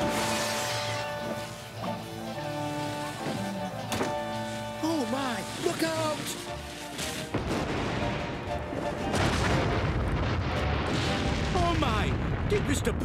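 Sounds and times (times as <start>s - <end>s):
deep rumbling blasts: 7.3s - 13.0s
cartoon explosion blast: 9.1s - 12.6s.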